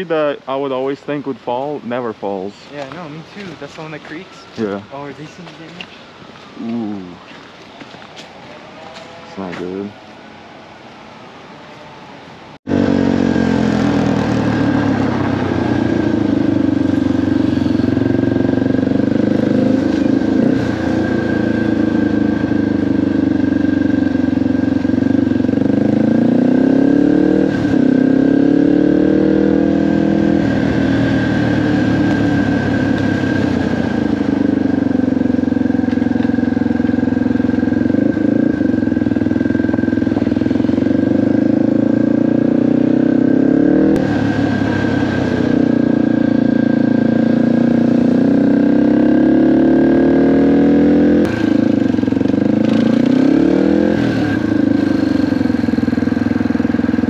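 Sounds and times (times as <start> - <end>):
dirt bike engine revving: 12.7 - 57.0.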